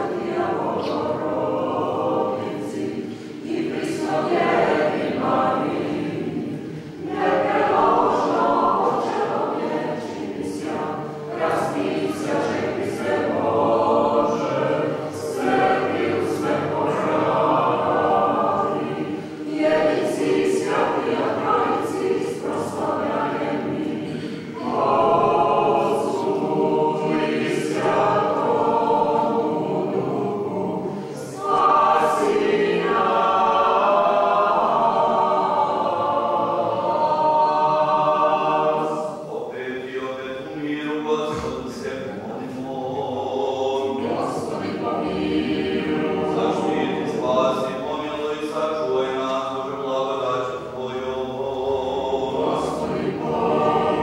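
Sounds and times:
choir singing chant: 0.0s - 54.0s.

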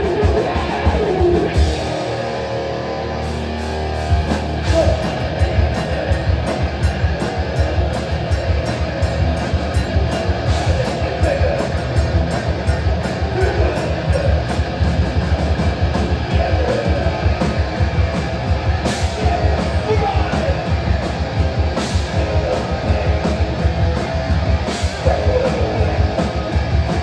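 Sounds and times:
fast drumming: 0.0s - 2.2s, 4.1s - 27.0s
bass guitar: 0.0s - 27.0s
distorted electric guitar: 0.0s - 27.0s.

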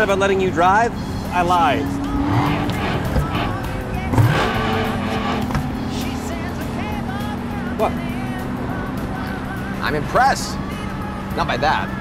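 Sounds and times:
background music: 0.0s - 12.0s
sports car engine: 0.0s - 12.0s.

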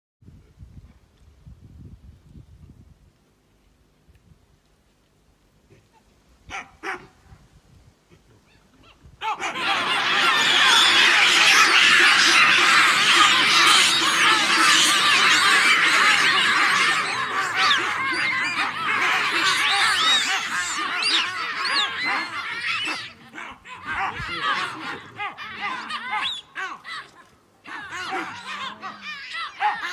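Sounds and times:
baboons barking and screaming: 8.2s - 29.9s.

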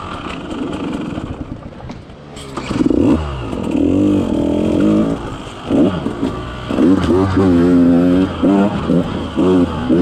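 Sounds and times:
two-stroke engine revving: 0.0s - 1.6s, 2.4s - 10.0s.

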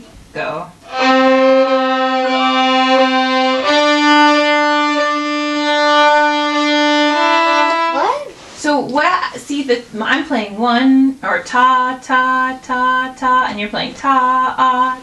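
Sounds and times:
two violins bowing: 0.8s - 8.4s
person talking: 7.9s - 11.0s.

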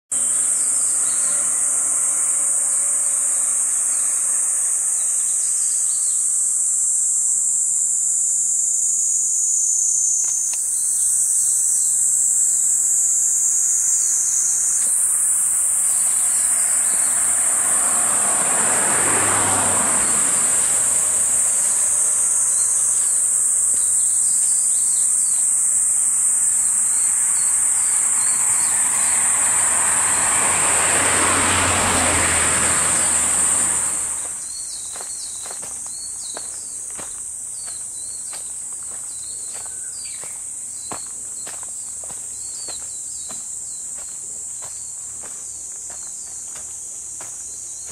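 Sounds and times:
insects shrilling: 0.1s - 47.9s
vehicle passing: 0.2s - 5.8s, 13.3s - 23.8s, 26.8s - 35.8s.

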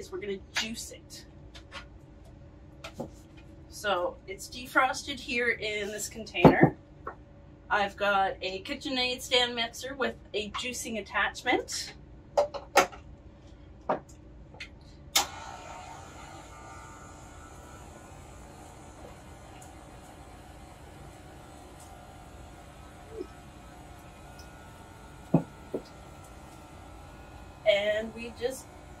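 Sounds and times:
stand mixer motor humming: 15.2s - 29.0s.

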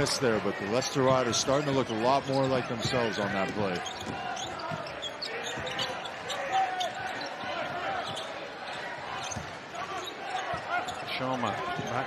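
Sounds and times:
sneaker squeaks: 0.9s - 12.0s.

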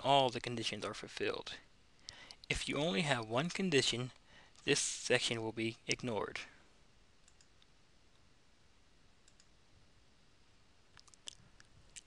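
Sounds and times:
computer mouse clicks: 7.2s - 8.2s, 9.2s - 9.5s.

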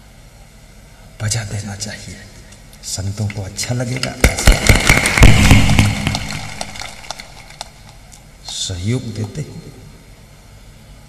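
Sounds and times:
loud close claps: 3.2s - 8.6s
crowd clapping: 3.3s - 8.2s.

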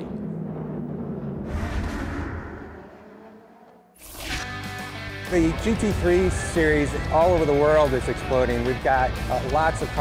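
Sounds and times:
race car engines at low revs: 0.0s - 4.0s.

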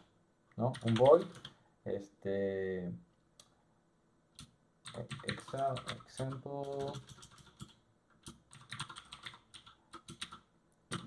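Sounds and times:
computer keyboard typing: 0.7s - 1.6s, 4.4s - 11.0s.

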